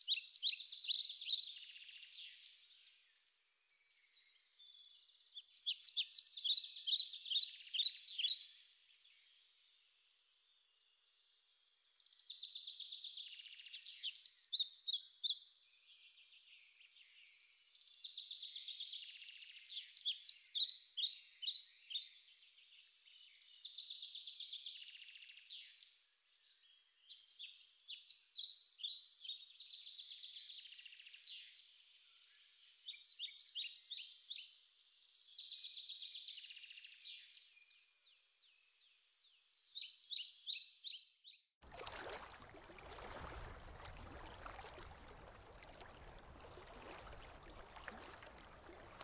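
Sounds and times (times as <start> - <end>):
small birds chirping and trilling: 18.4 - 49.0.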